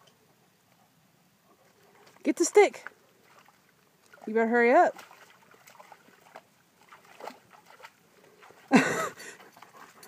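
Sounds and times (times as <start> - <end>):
dog wading in water: 1.4 - 10.0.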